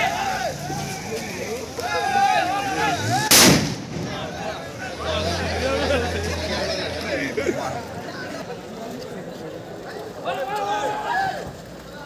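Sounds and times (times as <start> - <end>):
firecracker bang: 3.2 - 4.6.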